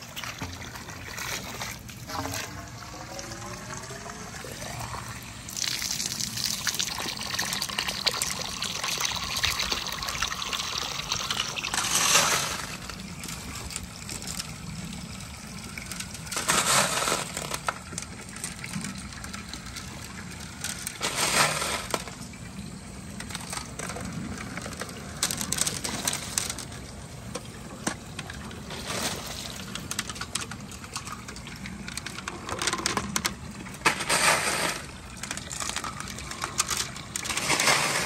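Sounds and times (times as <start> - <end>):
water pouring onto pavement: 0.0 - 38.0.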